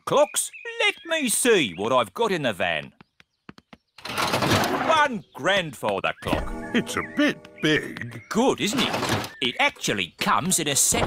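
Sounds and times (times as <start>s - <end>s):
cartoon rummaging clatter: 4.0s - 5.1s, 8.6s - 9.9s.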